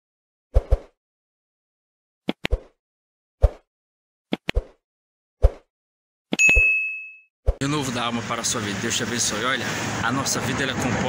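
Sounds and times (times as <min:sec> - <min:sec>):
sharp mouse clicks: 0:02.3 - 0:02.7, 0:04.3 - 0:04.7.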